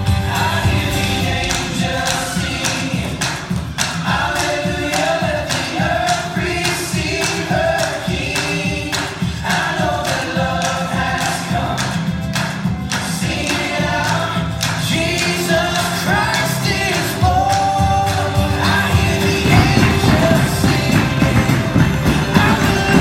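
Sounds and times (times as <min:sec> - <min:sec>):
several voices singing over beat: 0:00.0 - 0:23.0.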